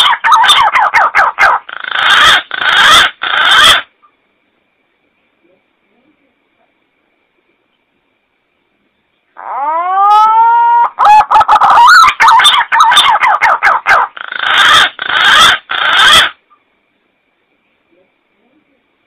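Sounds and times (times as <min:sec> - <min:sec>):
recorded pigeon call: 0:00.0 - 0:03.9, 0:09.4 - 0:16.6.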